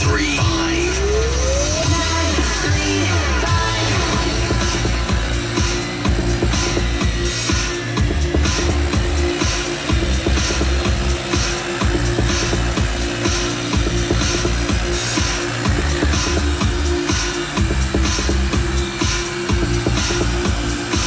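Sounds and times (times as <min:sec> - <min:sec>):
electronic dance music: 0:00.0 - 0:21.0.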